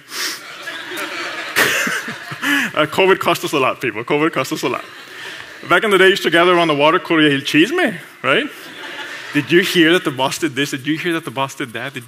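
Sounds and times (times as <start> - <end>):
man laughing under breath: 0.2 - 2.8.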